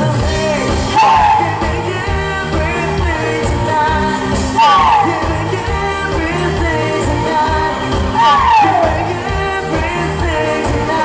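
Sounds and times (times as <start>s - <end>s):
live pop band playing: 0.0s - 11.0s
person singing: 0.0s - 11.0s.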